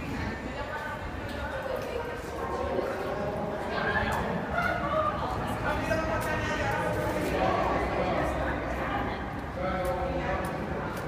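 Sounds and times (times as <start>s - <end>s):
people talking: 0.0s - 11.0s
footsteps on concrete: 9.2s - 11.0s.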